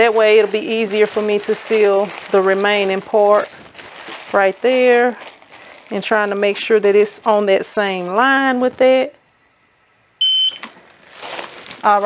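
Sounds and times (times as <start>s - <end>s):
plastic bag crinkling: 0.0s - 8.8s, 10.5s - 12.0s
high-pitched electronic beep: 10.2s - 10.6s.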